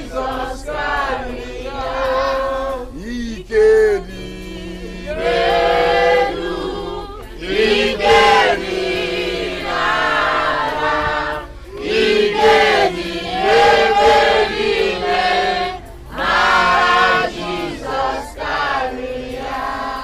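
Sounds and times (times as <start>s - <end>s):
crowd singing a worship song: 0.0s - 20.0s
man's voice leading singing: 0.0s - 20.0s.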